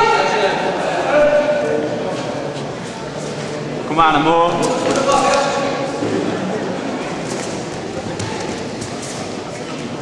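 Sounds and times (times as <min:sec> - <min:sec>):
people calling out in hall: 0:00.0 - 0:02.5, 0:04.6 - 0:06.8.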